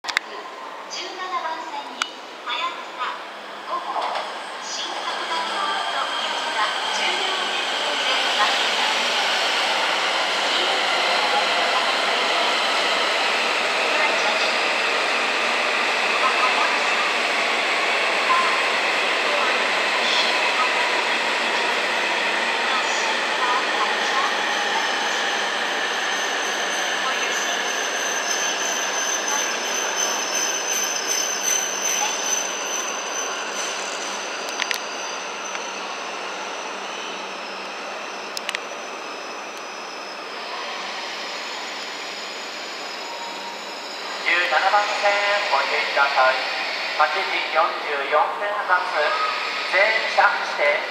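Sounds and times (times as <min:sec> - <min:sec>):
train running noise and motor whine: 0:00.1 - 0:50.9.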